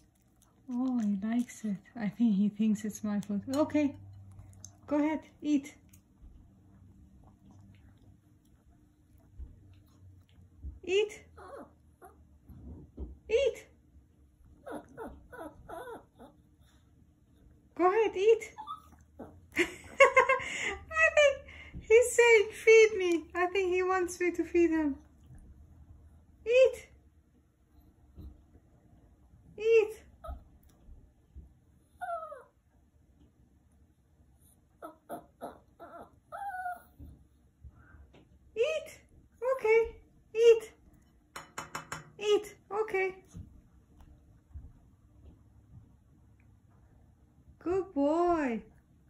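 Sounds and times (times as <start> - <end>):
dog whining: 11.4 - 12.2, 14.6 - 16.4, 18.6 - 19.4, 31.9 - 32.6, 34.8 - 37.1.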